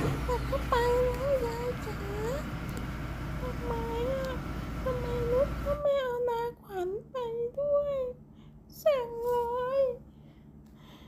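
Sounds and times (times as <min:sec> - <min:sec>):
car engine rumbling: 0:00.0 - 0:06.0.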